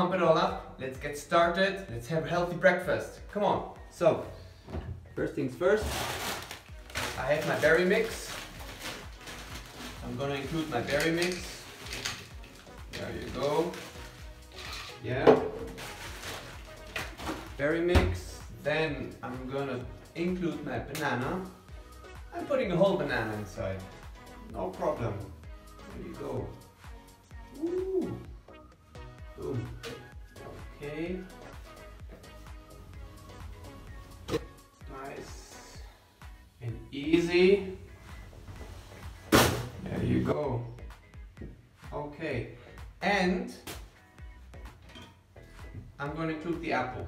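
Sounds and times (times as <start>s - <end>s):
background music: 0.0s - 47.0s
person saying yeah: 27.5s - 28.3s.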